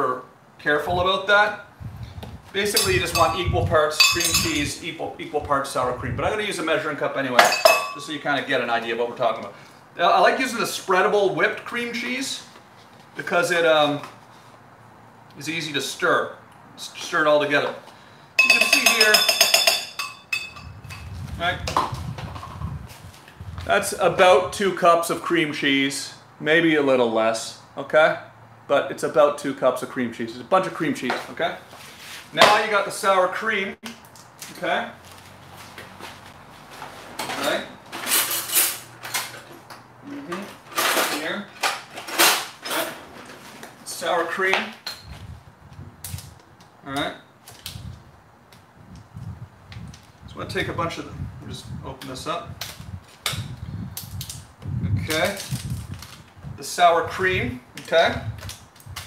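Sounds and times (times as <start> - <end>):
metal spoon clinking on glass cup: 2.7 - 3.4, 4.0 - 4.7, 7.4 - 8.0, 18.4 - 21.1.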